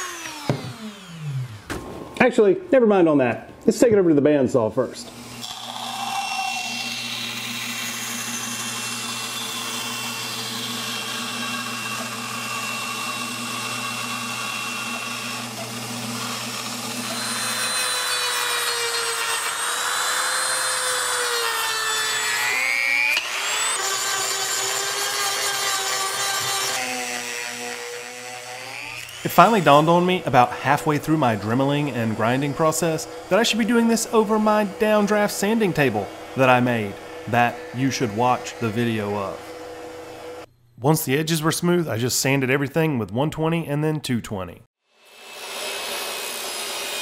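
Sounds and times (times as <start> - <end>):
power tool whining: 0.0 - 1.8, 5.1 - 40.5
bandsaw cutting: 0.0 - 2.0, 5.1 - 40.5, 45.0 - 47.0.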